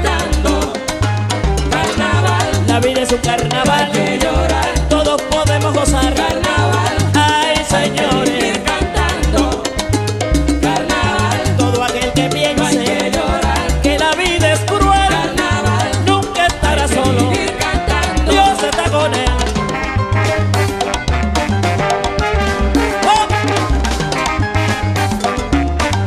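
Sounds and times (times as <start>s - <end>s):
salsa music: 0.0s - 26.0s.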